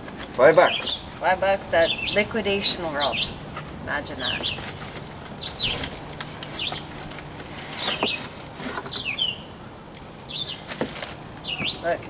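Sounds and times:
small bird chirping: 0:00.5 - 0:01.1, 0:01.8 - 0:03.5, 0:04.2 - 0:07.0, 0:07.7 - 0:09.6, 0:10.2 - 0:10.7, 0:11.4 - 0:11.9
packaging rustling and clicking: 0:04.3 - 0:09.1, 0:10.6 - 0:11.2.

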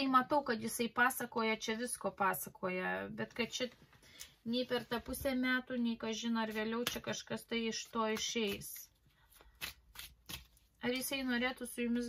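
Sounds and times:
woman speaking: 0:00.0 - 0:03.8, 0:04.5 - 0:08.9, 0:10.8 - 0:12.0.

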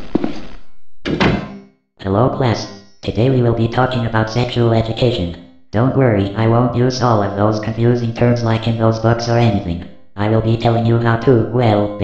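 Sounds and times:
hard thuds: 0:00.0 - 0:01.7
thump with ringing tail: 0:01.1 - 0:01.7.

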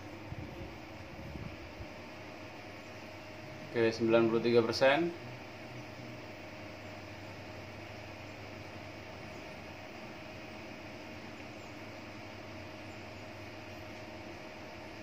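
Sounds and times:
indoor hum and hiss: 0:00.0 - 0:15.0.

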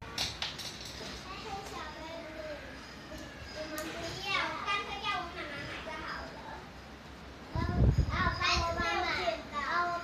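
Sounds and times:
children talking and calling out: 0:01.0 - 0:10.0.

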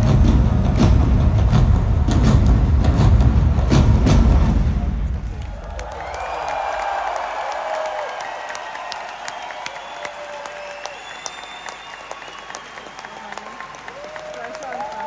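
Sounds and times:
concert music: 0:00.0 - 0:05.5
crowd clapping: 0:04.7 - 0:15.0
crowd cheering and whistling: 0:05.2 - 0:15.0.

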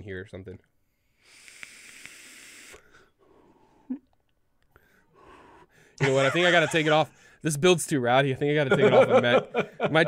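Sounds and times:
air hissing through vape tank: 0:01.2 - 0:03.0.

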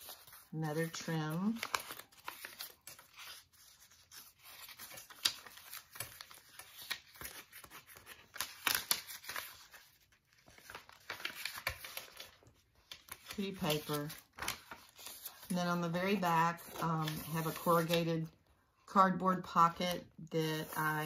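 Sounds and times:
paper pages turning: 0:00.0 - 0:18.2.

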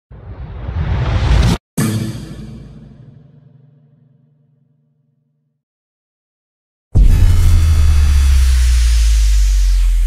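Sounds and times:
deep drone with hiss: 0:07.3 - 0:10.0.

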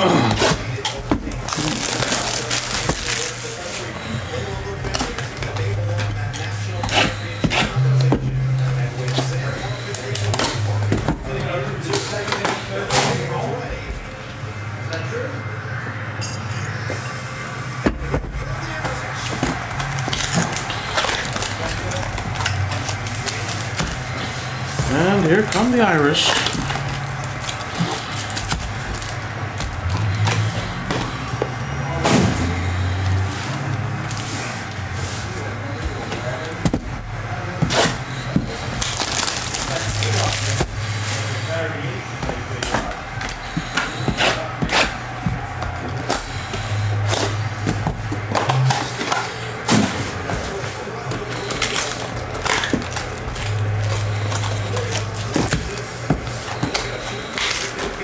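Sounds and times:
card packs being torn open: 0:00.0 - 0:13.4, 0:18.5 - 0:36.5, 0:37.4 - 0:41.6, 0:46.0 - 0:58.0
indistinct voices: 0:00.0 - 0:58.0
plastic wrap crinkling: 0:00.4 - 0:04.0, 0:18.7 - 0:31.4, 0:37.4 - 0:41.6, 0:50.2 - 0:58.0.

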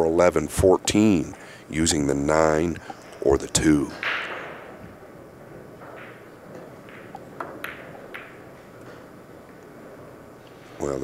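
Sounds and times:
billiard balls rolling: 0:02.0 - 0:11.0
billiard balls clicking together: 0:02.8 - 0:09.8
cue striking billiard ball: 0:03.9 - 0:10.0.

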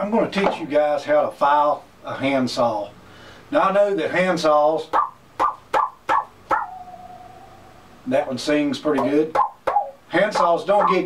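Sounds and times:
saw blade ringing tone: 0:06.6 - 0:08.0.

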